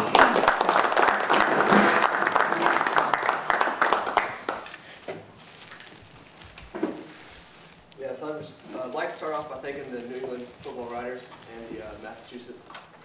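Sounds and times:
small group applauding: 0.0s - 5.0s.

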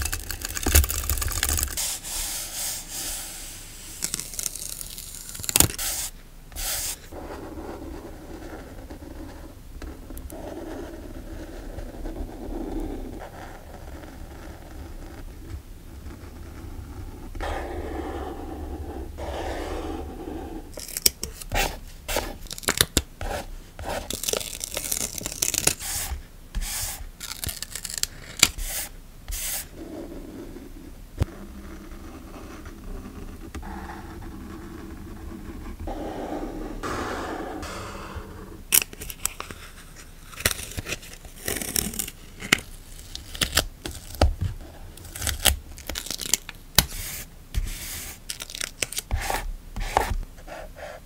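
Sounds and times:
pen scratching along ruler: 17.4s - 20.7s, 31.3s - 38.5s.

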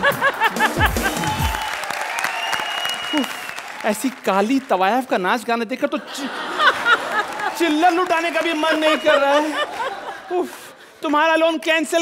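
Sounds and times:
man laughing heartily: 0.0s - 1.6s, 9.1s - 10.7s
background music: 0.0s - 2.2s
audience applause: 0.0s - 5.2s, 6.3s - 10.3s.

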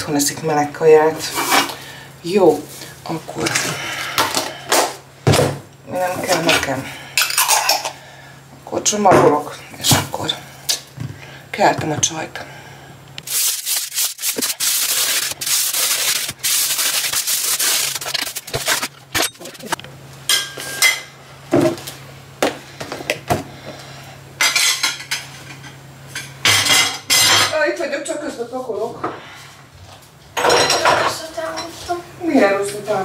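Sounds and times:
aluminium foil crinkling: 13.2s - 19.8s.

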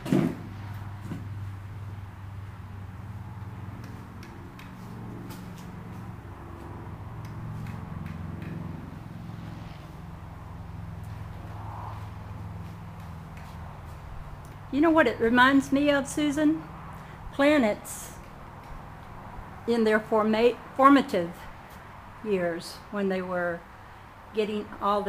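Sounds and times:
low mechanical hum: 0.0s - 25.0s.

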